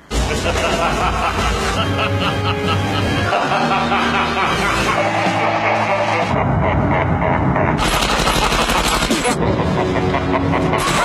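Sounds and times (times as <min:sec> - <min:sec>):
background music: 0:00.0 - 0:11.0
rapid automatic gunfire: 0:07.8 - 0:09.4.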